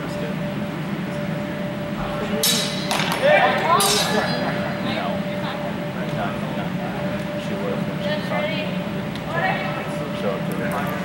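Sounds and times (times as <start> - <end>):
voices calling out: 2.0 - 5.9
sword blades clashing: 2.4 - 3.1, 3.8 - 4.2.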